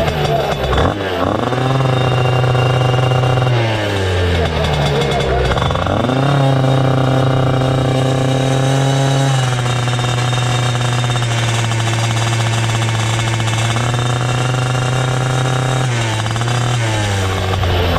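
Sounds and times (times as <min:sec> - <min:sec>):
kart engine running: 0:00.0 - 0:17.9.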